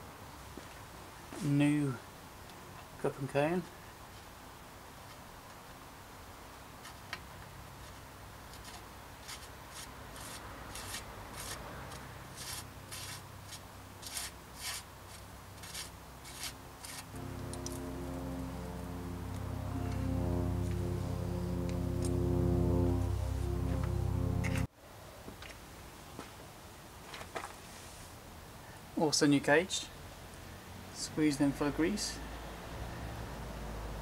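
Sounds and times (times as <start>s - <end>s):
background music: 17.1s - 24.7s.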